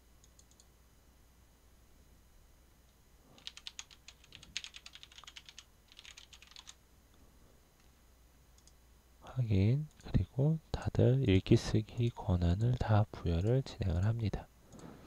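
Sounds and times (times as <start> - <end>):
computer keyboard typing: 3.4 - 6.8.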